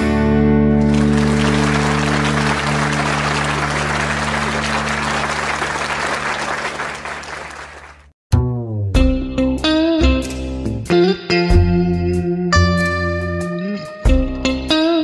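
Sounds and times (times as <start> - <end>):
bass and guitar chord ringing: 0.0 - 5.3, 8.4 - 15.0
applause: 0.8 - 8.1.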